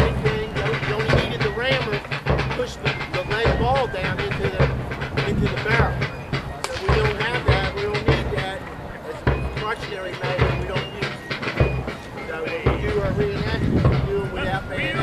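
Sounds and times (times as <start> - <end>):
people talking: 0.0 - 11.3, 11.9 - 15.0.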